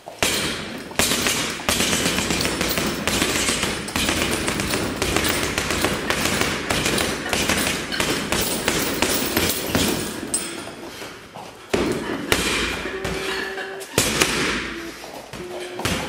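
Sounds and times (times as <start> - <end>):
gloves punching heavy bag: 0.0 - 16.0.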